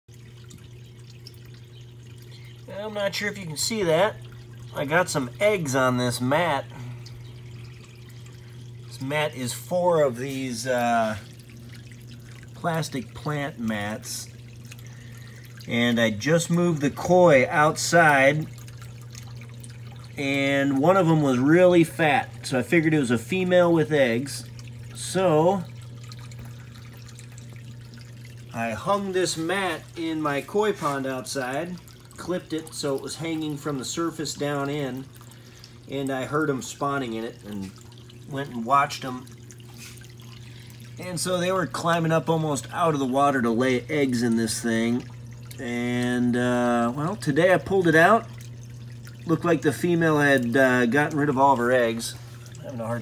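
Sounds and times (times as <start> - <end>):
steady low hum: 0.1 - 53.0
water trickling and dripping: 0.1 - 53.0.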